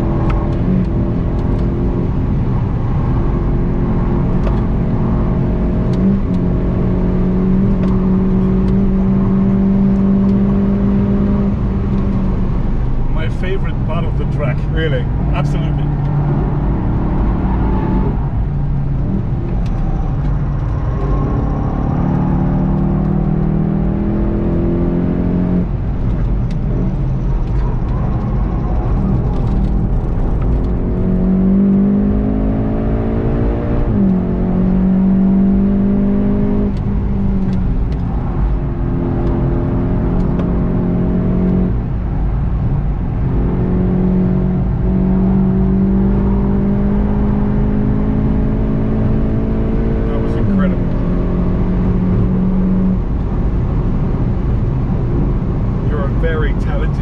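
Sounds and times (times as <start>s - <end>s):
car engine accelerating hard: 0.0s - 57.0s
tyre and road rumble: 0.0s - 57.0s.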